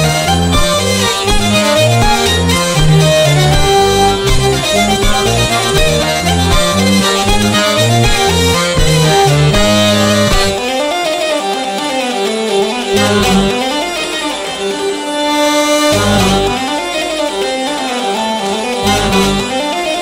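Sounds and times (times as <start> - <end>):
button accordion: 0.0 - 10.8, 12.6 - 14.6, 15.3 - 17.2, 18.0 - 20.0
hurdy-gurdy: 0.0 - 20.0.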